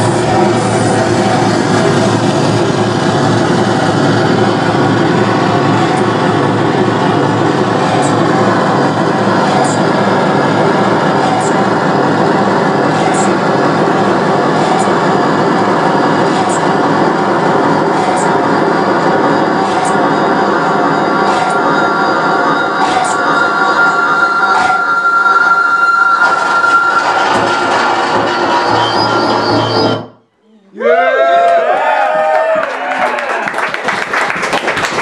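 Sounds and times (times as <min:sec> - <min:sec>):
distorted electronic noise: 0:00.0 - 0:30.2.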